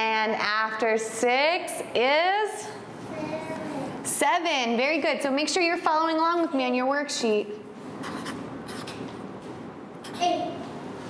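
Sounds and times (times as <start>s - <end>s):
marker scratching on paper: 7.9s - 9.2s.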